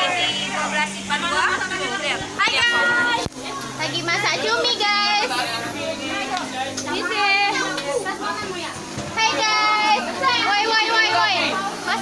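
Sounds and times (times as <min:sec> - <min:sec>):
teenagers chattering: 0:00.0 - 0:12.0.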